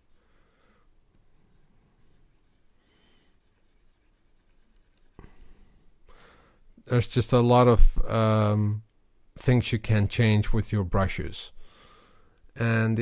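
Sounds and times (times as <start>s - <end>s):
stylus scratching on tablet: 0.0s - 5.3s.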